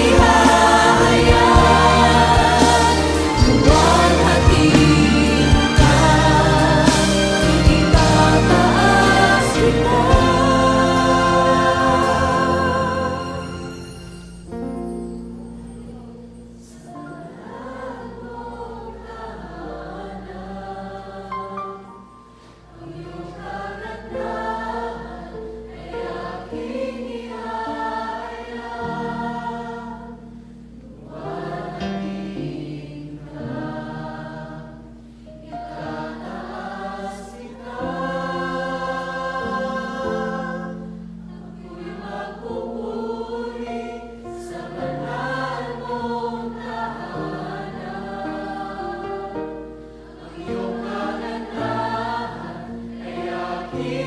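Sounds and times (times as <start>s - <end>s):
group singing worship song: 0.0s - 14.5s, 15.7s - 54.0s
instrumental accompaniment: 0.0s - 19.3s.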